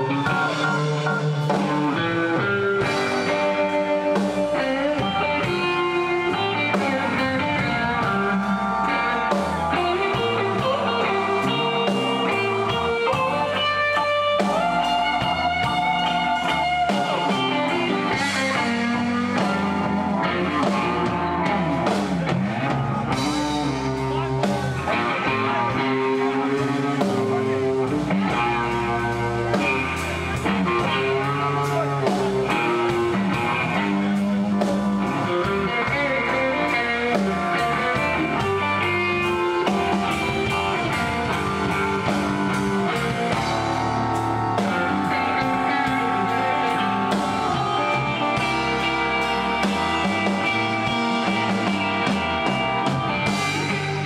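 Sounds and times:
bass guitar: 0.0 - 54.0
drums: 0.0 - 54.0
electric guitar lead with bent notes: 0.0 - 54.0
second electric guitar: 0.0 - 54.0.

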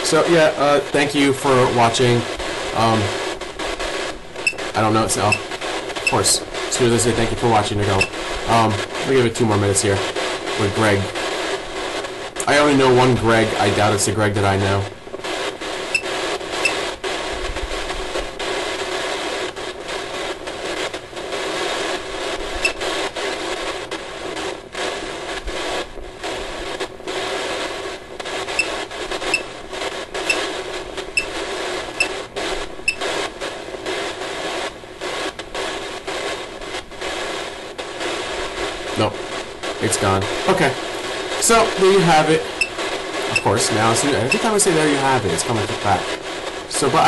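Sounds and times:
radio static hiss: 0.0 - 47.0.

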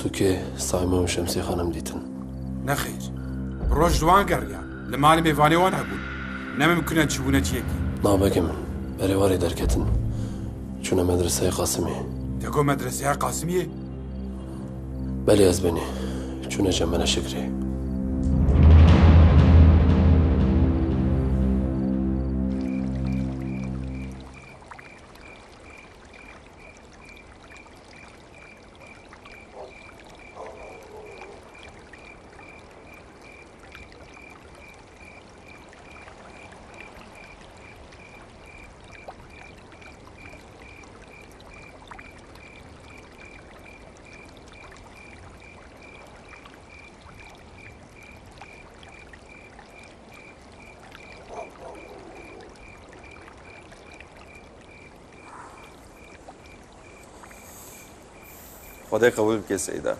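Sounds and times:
faint flowing water: 0.0 - 59.9.

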